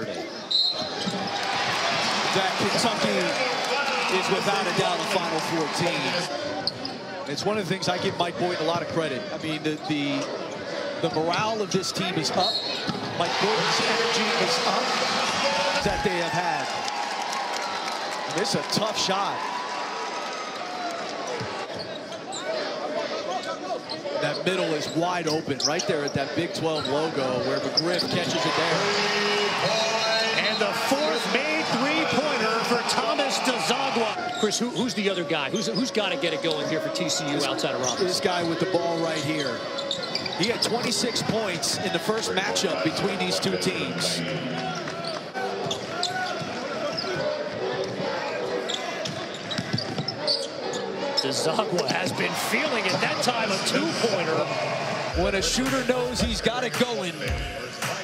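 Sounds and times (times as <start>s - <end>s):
crowd noise: 0.0s - 58.0s
sneaker squeaks: 0.2s - 1.8s, 6.4s - 7.4s, 12.2s - 13.1s, 21.2s - 28.5s, 37.7s - 41.2s, 44.7s - 52.0s.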